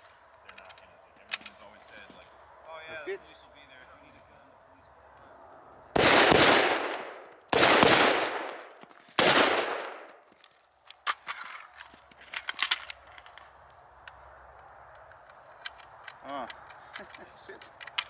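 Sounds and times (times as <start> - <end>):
loud rifle shots: 5.9 - 10.2.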